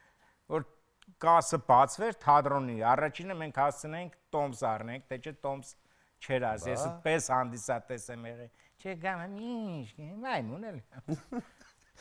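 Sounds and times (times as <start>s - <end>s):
short voiced sounds: 6.6s - 7.1s.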